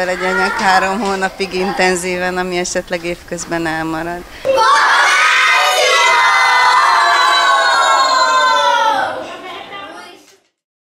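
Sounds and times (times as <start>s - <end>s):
children shouting in unison: 4.4s - 9.3s.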